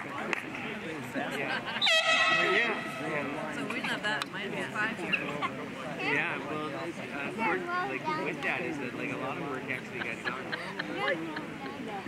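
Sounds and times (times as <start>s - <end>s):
quieter voices: 0.0s - 12.0s.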